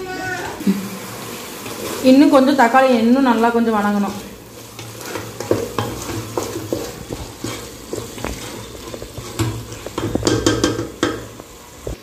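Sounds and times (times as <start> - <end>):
vegetables sizzling in a pot: 0.0 - 12.0
wooden ladle stirring: 0.0 - 12.0.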